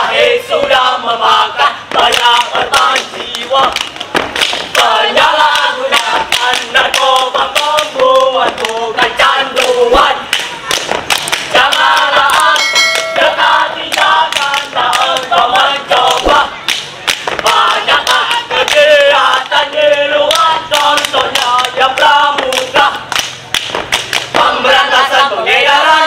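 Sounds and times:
boys singing in unison: 0:00.0 - 0:10.6, 0:11.3 - 0:16.7, 0:17.4 - 0:23.4, 0:24.2 - 0:26.0
sharp rhythmic beats: 0:00.0 - 0:26.0
short steady tone: 0:12.6 - 0:13.4.

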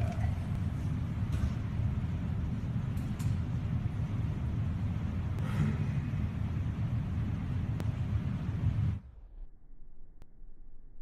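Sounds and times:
low rumble of machinery: 0:00.0 - 0:11.0.

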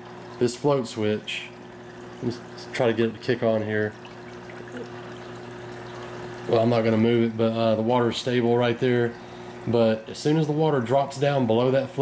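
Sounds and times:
low pump hum: 0:00.0 - 0:12.0
trickle of flowing water: 0:00.0 - 0:12.0.

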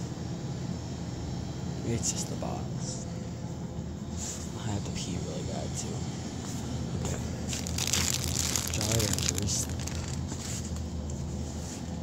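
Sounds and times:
low background rumble: 0:00.0 - 0:11.3
crackling rustling noise: 0:07.5 - 0:10.8.

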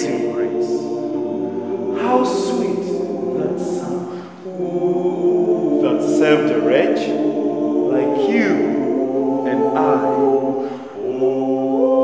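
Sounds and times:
a cappella vocal group singing: 0:00.0 - 0:12.0.

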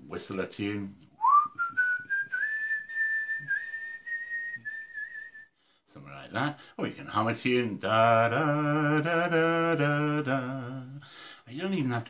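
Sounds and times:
man whistling: 0:01.2 - 0:05.6.

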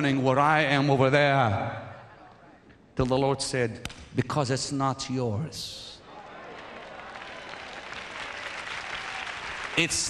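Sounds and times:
congregation applauding: 0:06.2 - 0:10.0.

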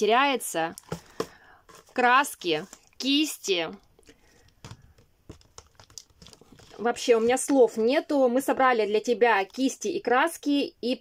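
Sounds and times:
paper filler crinkling: 0:04.2 - 0:07.6.

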